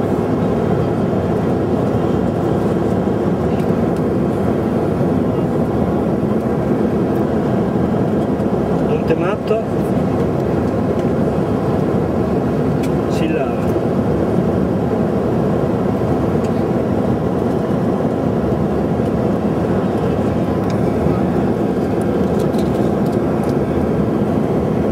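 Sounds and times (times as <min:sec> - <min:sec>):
airliner cabin drone: 0:00.0 - 0:24.9.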